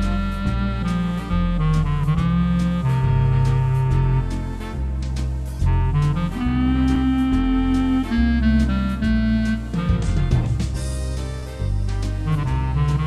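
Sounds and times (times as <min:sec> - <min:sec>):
organ bass notes: 0:00.0 - 0:13.0
organ playing swing jazz melody: 0:00.0 - 0:13.0
steady drum beat: 0:00.8 - 0:13.0.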